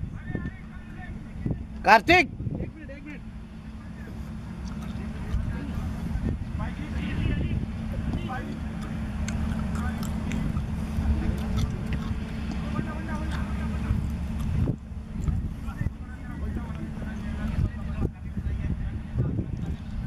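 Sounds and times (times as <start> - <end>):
faint distant voices: 0.0 - 20.0
wind buffeting microphone: 0.0 - 20.0.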